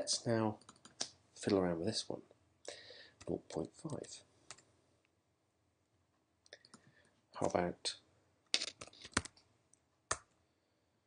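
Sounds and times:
computer keys clicking: 0.6 - 1.1.

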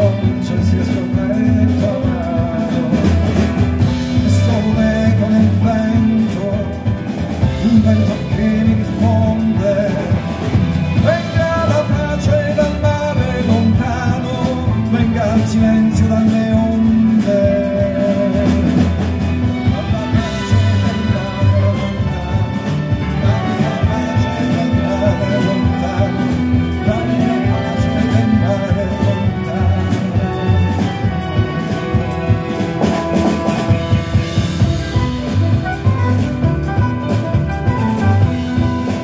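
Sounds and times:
double bass: 0.0 - 39.0
drums: 0.0 - 39.0
piano: 0.0 - 39.0.

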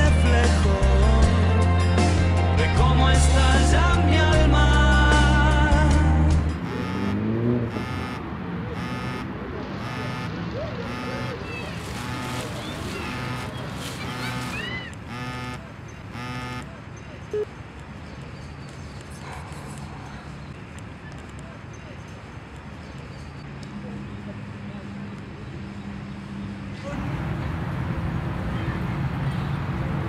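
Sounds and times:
smartphone ringtone: 6.6 - 8.2, 8.8 - 11.4, 16.2 - 16.6.

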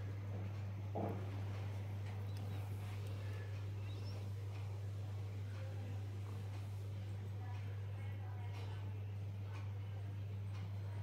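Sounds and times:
faint background noise: 0.0 - 11.0
steady low hum: 0.0 - 11.0
faint high chirps: 2.2 - 4.4.

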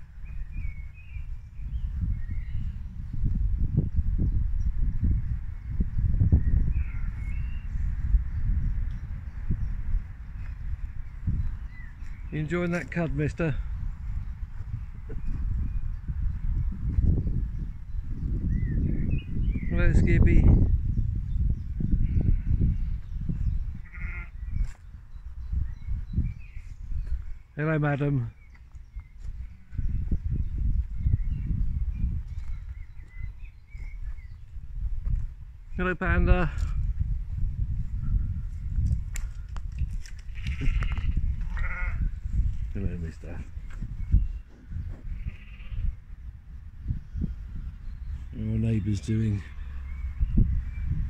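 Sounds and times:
low rumble on microphone: 0.0 - 27.4, 28.2 - 51.0
sheep bleating: 23.8 - 24.4, 40.3 - 42.1, 45.1 - 46.0.

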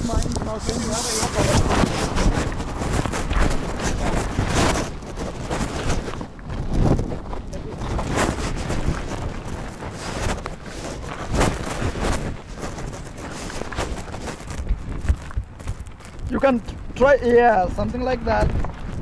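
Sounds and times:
rustling handling noise: 0.0 - 19.0
wind buffeting microphone: 0.0 - 19.0.

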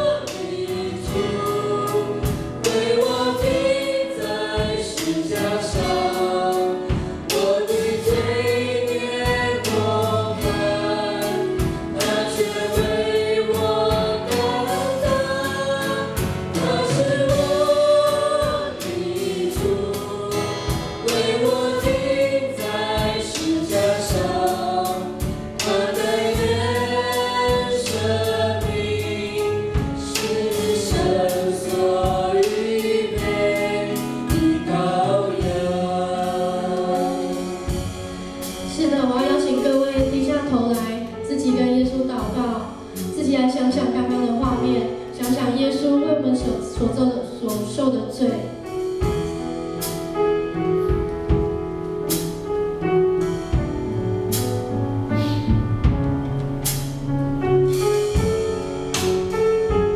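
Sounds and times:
people singing into microphones: 0.0 - 45.4
steady drum beat: 0.0 - 45.7, 48.6 - 59.9
acoustic guitar: 0.0 - 59.9
grand piano: 0.0 - 59.9.

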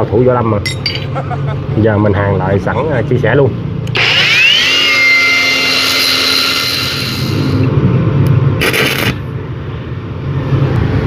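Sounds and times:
angle grinder whining: 3.9 - 7.7.

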